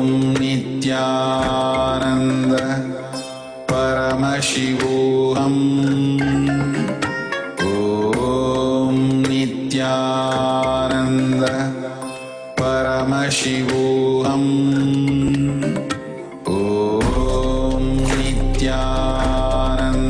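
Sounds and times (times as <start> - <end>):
mantra chanting: 0.0 - 20.0
musical accompaniment: 1.4 - 9.4.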